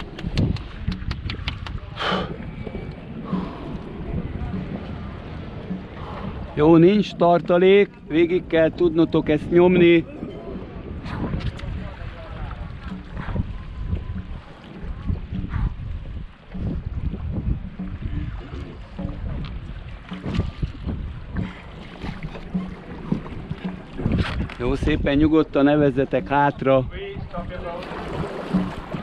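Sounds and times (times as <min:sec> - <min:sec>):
paddles knocking on hull: 0:00.0 - 0:29.0
small water sounds: 0:00.0 - 0:29.0
wind rumbling on microphone: 0:00.0 - 0:29.0
faint voices: 0:01.6 - 0:07.2.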